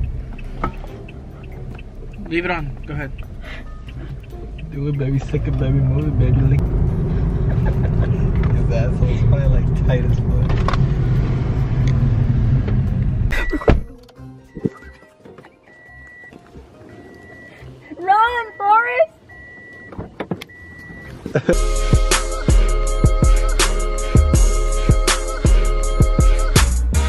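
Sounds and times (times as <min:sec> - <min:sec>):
car warning chime beeping: 0:00.0 - 0:06.8, 0:13.3 - 0:21.3
car engine rumble inside cabin: 0:00.0 - 0:15.0.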